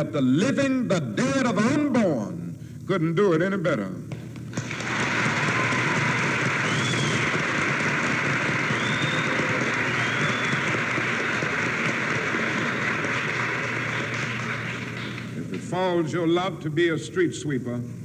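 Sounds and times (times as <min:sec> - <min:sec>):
audience applauding: 0:04.5 - 0:15.7.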